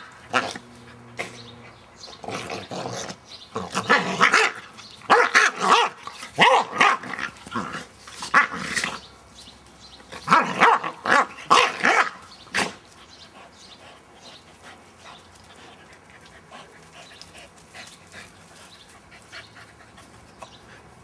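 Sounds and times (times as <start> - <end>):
dogs growling: 0.0 - 9.1
dogs barking: 3.6 - 9.0, 10.1 - 12.8.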